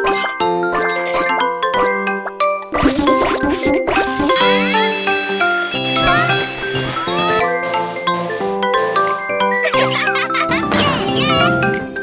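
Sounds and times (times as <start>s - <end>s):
bouncy children's game music: 0.1s - 11.9s
chiming ding effects: 4.4s - 8.1s.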